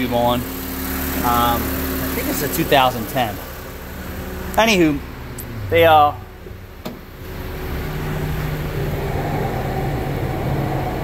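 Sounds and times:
mechanical hum with rushing noise: 0.0 - 11.0.

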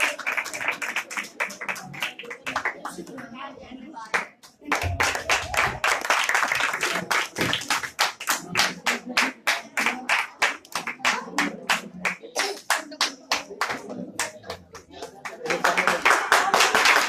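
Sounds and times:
people clapping in rhythm: 0.0 - 3.4, 4.0 - 17.0
faint voices: 0.0 - 17.0.

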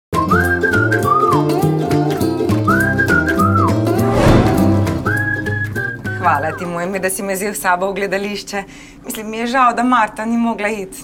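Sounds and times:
whistled melody over bass line: 0.2 - 1.8, 2.5 - 6.7
swish: 3.8 - 6.2.

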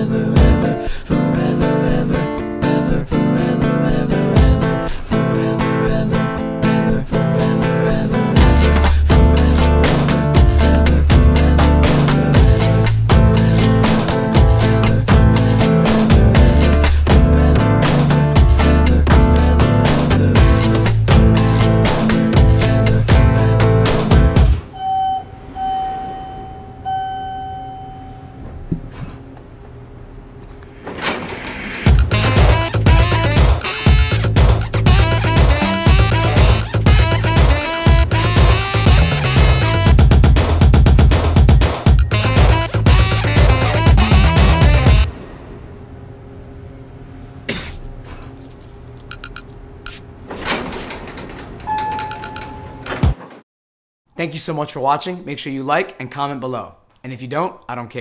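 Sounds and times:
acoustic guitar music: 0.0 - 24.8, 31.9 - 45.1
elevator doors sliding: 8.6 - 33.8, 43.2 - 53.4
elevator chime: 24.6 - 28.7, 51.1 - 53.0
steady electronic tone: 24.7 - 28.4.

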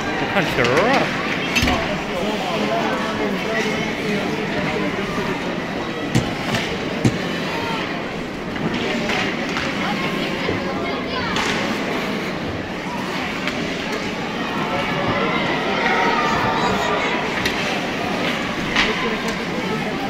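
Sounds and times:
hum of voices: 0.0 - 20.0
hockey sticks knocking puck: 6.1 - 7.5, 8.5 - 10.1, 11.3 - 12.0, 17.3 - 19.6.

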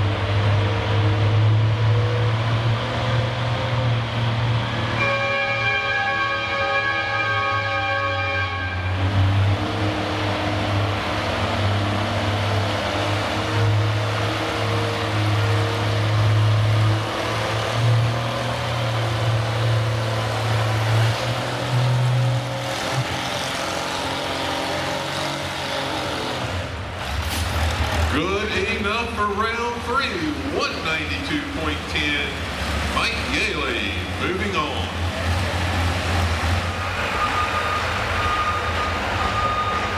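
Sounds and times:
tractor engine working under load: 9.0 - 39.9.

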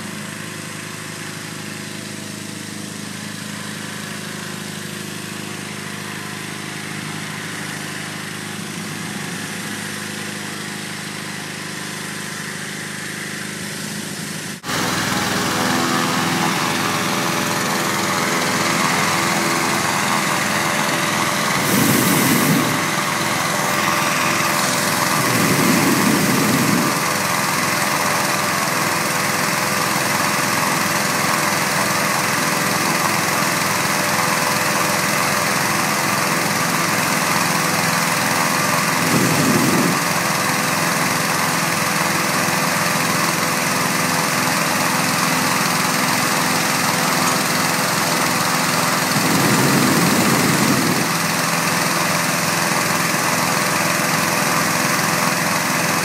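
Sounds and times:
inflator fan engine running: 0.0 - 56.0
low swells: 20.2 - 27.1.

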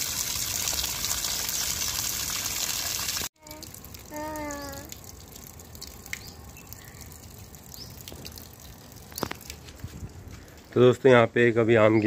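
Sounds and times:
water splashing onto paving: 0.0 - 10.8.

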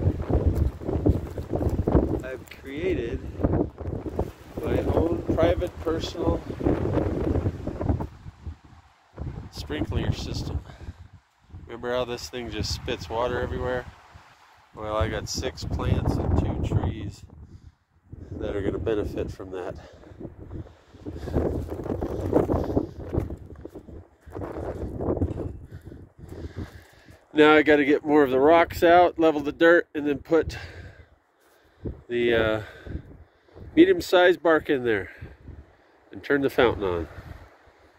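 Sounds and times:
wind buffeting microphone: 0.0 - 28.9, 31.7 - 34.0, 35.1 - 35.8
footsteps crunching on dirt: 0.2 - 2.7.

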